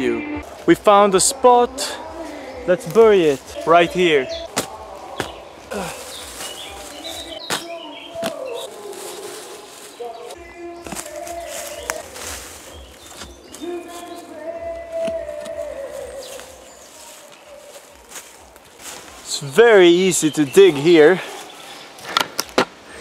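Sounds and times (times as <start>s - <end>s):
distant oompah music: 0.0s - 22.1s.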